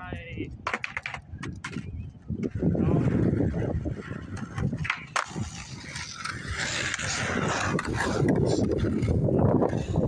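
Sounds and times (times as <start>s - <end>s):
skateboard wheels rolling: 0.2s - 10.0s
skateboard landing clack: 0.6s - 1.9s, 4.5s - 5.4s.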